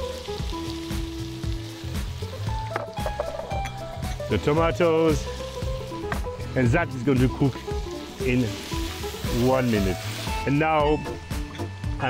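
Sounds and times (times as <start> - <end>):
vegetables sizzling in a saucepan: 0.0 - 11.5.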